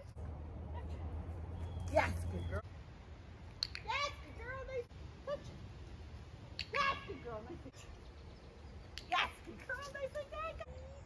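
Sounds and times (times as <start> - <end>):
sharp click: 3.5 - 3.9, 6.6 - 6.8
woman's high-pitched calls to a dog: 3.8 - 5.5, 6.6 - 7.5.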